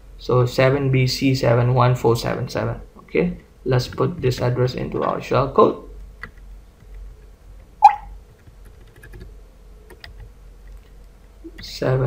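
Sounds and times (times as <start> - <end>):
loud falling-pitch sound: 7.8 - 8.1.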